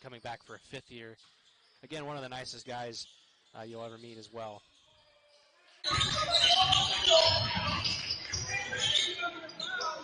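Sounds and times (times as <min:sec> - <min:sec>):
echoing voices: 0:01.8 - 0:10.0.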